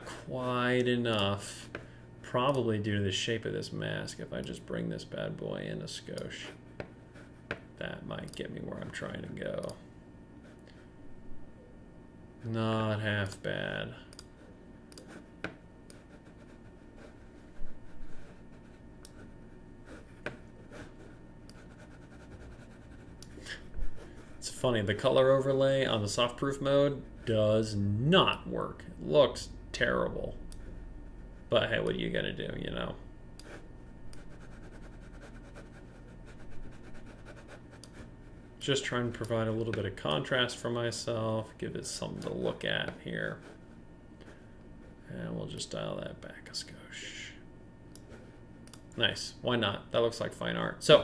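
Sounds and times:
low room hum: 0:00.0 - 0:51.0
computer mouse clicking: 0:47.9 - 0:48.8.

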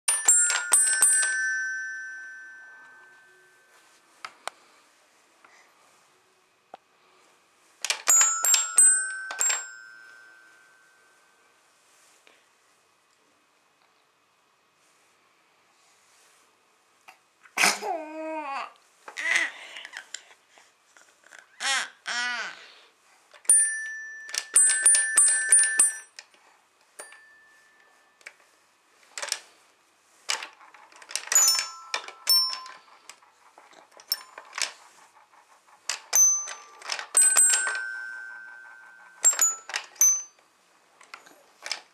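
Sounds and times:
toy xylophone strikes: 0:00.1 - 0:03.3, 0:08.1 - 0:10.5, 0:23.5 - 0:26.1, 0:31.3 - 0:32.8, 0:36.1 - 0:40.4.

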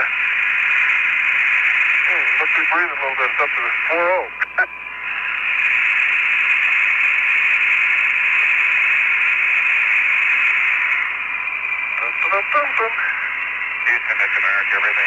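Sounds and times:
radio static hiss: 0:00.0 - 0:15.0
voice over radio: 0:02.0 - 0:04.7, 0:12.0 - 0:15.0.

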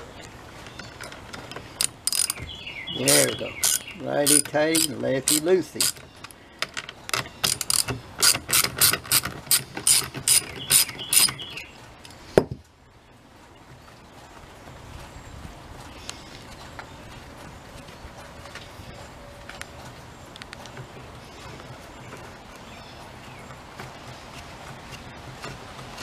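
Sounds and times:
ratchet wrench clicking: 0:01.8 - 0:02.4, 0:03.1 - 0:06.0, 0:07.4 - 0:11.4.

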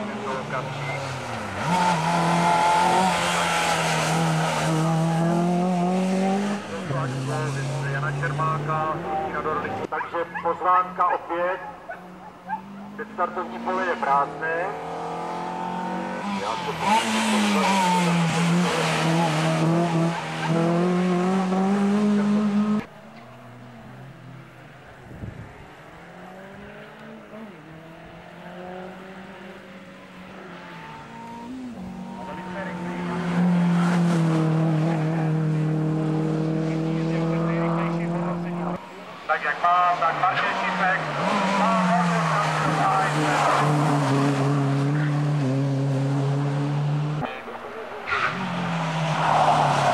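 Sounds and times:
race car engine at high revs: 0:00.0 - 0:11.0, 0:11.6 - 0:49.9.

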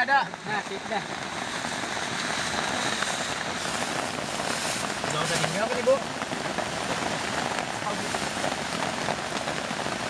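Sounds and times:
rain falling on forest: 0:00.0 - 0:10.0.

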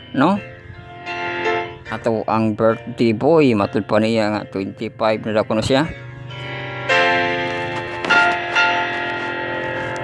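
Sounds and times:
bells ringing: 0:00.0 - 0:10.0.

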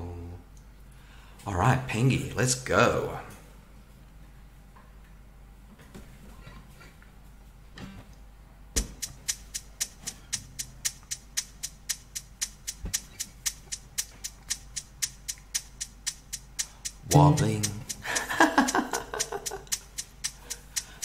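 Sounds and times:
kick drum thump: 0:08.8 - 0:09.1
quick hi-hat ticking: 0:08.8 - 0:21.0.

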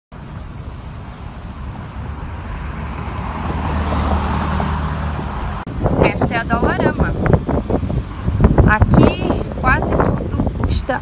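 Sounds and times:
vehicle passing on street: 0:00.1 - 0:11.0.

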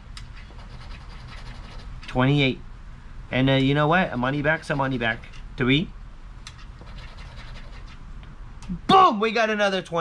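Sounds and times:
scraping lottery ticket coating: 0:00.3 - 0:02.2, 0:04.4 - 0:05.5, 0:06.6 - 0:08.0.

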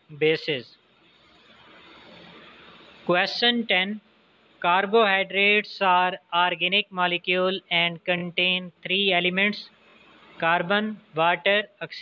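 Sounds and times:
faint even hiss: 0:00.0 - 0:12.0.

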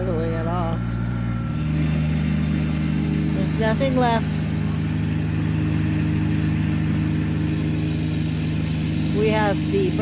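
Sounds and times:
compact tractor mowing grass: 0:00.0 - 0:10.0
ride-on roller engine running: 0:00.0 - 0:10.0.

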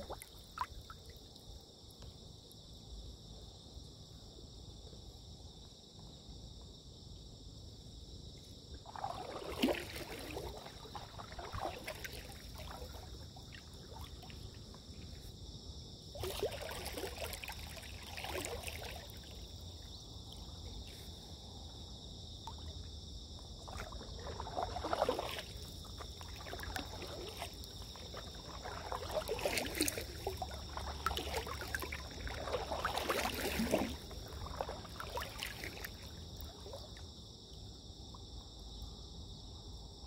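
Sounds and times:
insects droning: 0:00.0 - 0:40.0
paddle splashing through water: 0:08.8 - 0:15.4, 0:16.1 - 0:19.6, 0:22.4 - 0:37.0.

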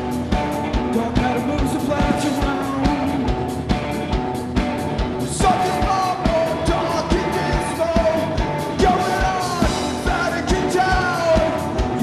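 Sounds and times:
live rock band playing: 0:00.0 - 0:12.0
person singing: 0:00.8 - 0:03.4, 0:05.2 - 0:12.0.

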